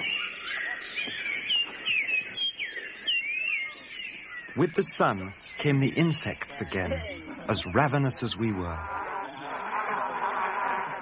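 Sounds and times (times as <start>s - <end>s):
birds chirping and whistling: 0.0s - 11.0s.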